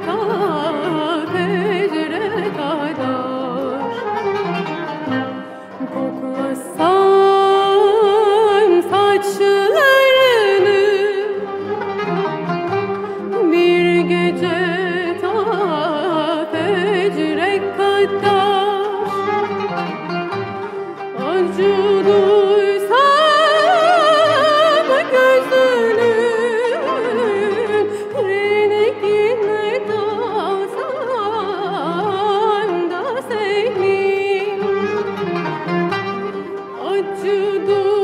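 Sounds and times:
plucked strings: 0.0s - 38.0s
person singing: 5.8s - 11.3s, 21.2s - 30.6s.

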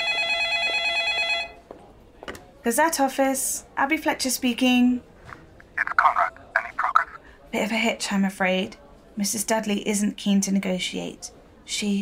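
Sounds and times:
telephone ringing with trilling tone: 0.0s - 1.6s.

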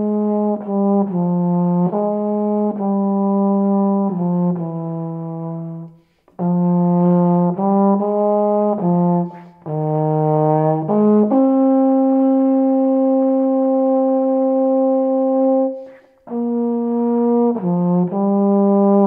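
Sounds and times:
solo tenor brass horn melody: 0.0s - 19.0s
player breathing: 5.9s - 6.4s, 15.8s - 16.3s.

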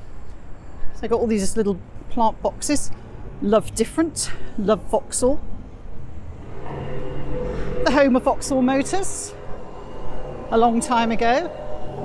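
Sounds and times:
steady mechanical hum: 0.0s - 12.0s
street noise rumble: 0.0s - 12.0s
woman's voice: 1.0s - 5.4s, 7.8s - 9.4s, 10.5s - 11.5s.

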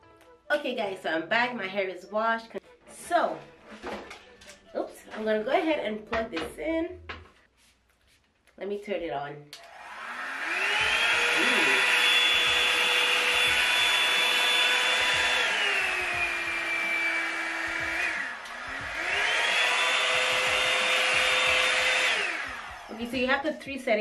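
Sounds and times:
hair dryer fan motor whine: 9.6s - 23.4s.

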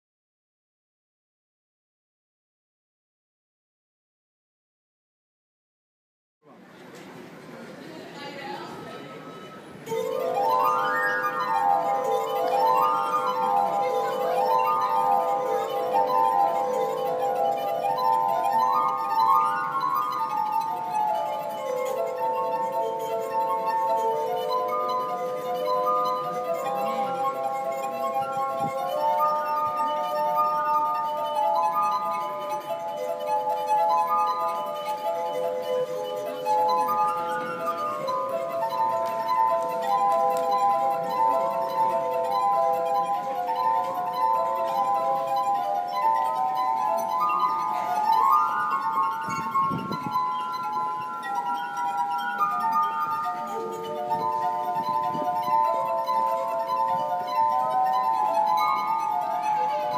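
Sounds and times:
glass harp ringing tones: 8.4s - 59.9s.

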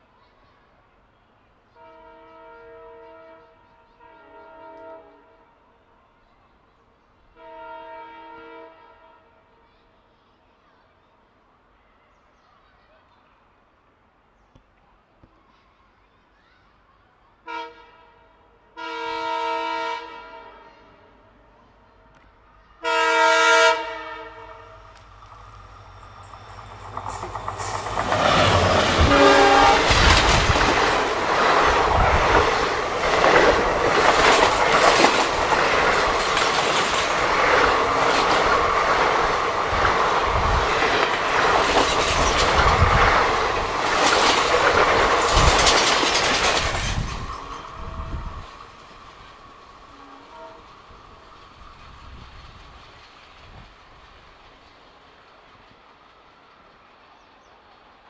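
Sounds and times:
train horn: 1.7s - 5.9s, 7.3s - 9.6s, 17.4s - 25.1s, 28.3s - 30.9s, 47.6s - 48.5s, 49.9s - 51.2s
train passing at speed: 17.2s - 58.0s
wheels clattering over rail joints: 26.2s - 47.9s.

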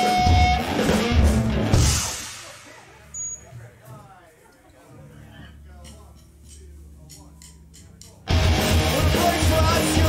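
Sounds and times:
live rock band playing: 0.0s - 3.3s, 8.3s - 10.0s.

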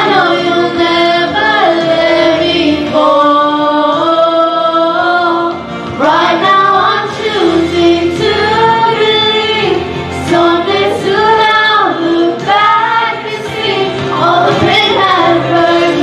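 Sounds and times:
woman and girl singing: 6.4s - 16.0s.

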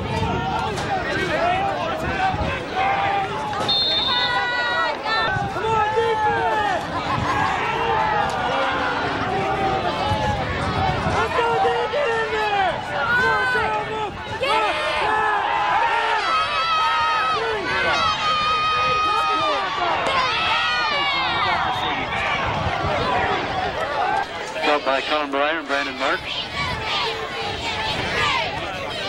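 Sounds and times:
crowd shouting and cheering: 0.0s - 29.0s.

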